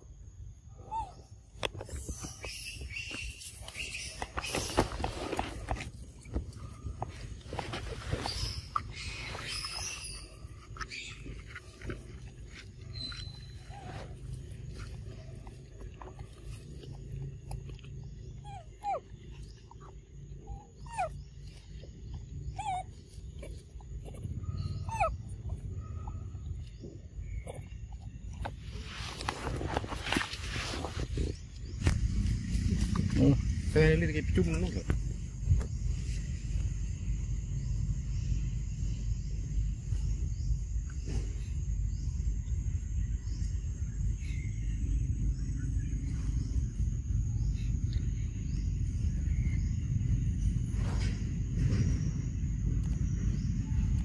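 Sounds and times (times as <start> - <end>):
rustle of animals moving: 7.1 - 9.8, 28.6 - 33.0
monkey squeaking calls: 22.6 - 22.9, 24.8 - 25.2.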